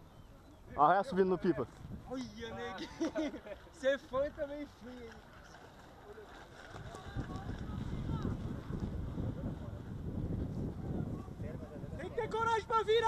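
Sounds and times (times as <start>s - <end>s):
wind buffeting microphone: 1.2s - 3.0s, 6.2s - 13.0s.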